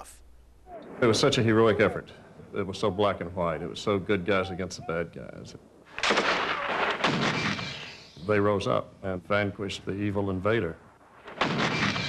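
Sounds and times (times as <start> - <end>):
machine gun firing: 6.0 - 8.1, 11.2 - 12.0.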